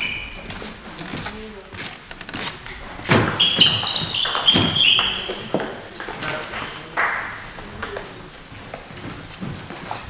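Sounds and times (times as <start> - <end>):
shoes squeaking on floor: 0.0 - 10.0
table tennis ball clicking: 3.2 - 8.1.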